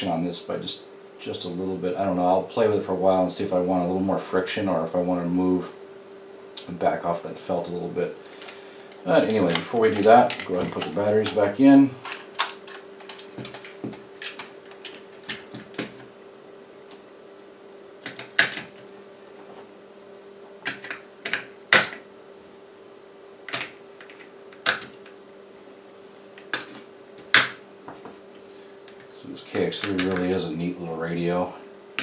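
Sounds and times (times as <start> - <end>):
faint steady hum: 0.0 - 32.0
handling clicks of case: 8.4 - 16.1, 18.0 - 18.8
batteries clacking into holder: 12.0 - 16.0, 29.8 - 30.4.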